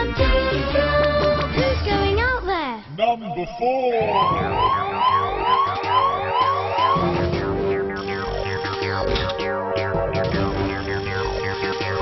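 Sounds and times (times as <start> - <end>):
rising siren-like swoop: 4.0 - 7.7
pulsing electronic beat: 4.0 - 12.0.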